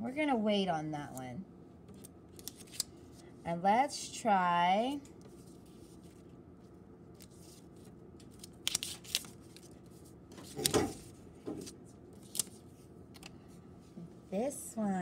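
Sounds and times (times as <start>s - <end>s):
paper cards rustling and tapping: 1.9s - 2.9s, 7.2s - 13.4s.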